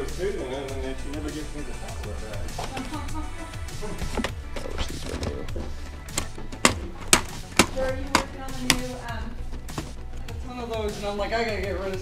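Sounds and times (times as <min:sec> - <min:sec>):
background music: 0:00.0 - 0:12.0
voices: 0:00.0 - 0:12.0.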